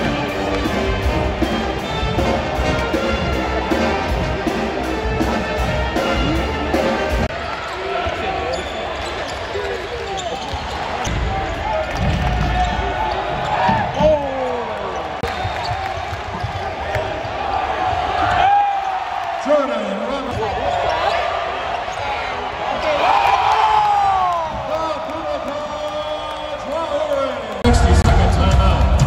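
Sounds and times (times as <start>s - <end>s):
crowd talking and calling out: 0.0s - 29.0s.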